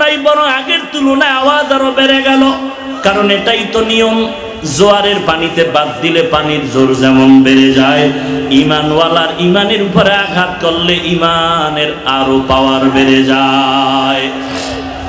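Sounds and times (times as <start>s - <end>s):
man chanting over loudspeakers: 0.0s - 15.0s.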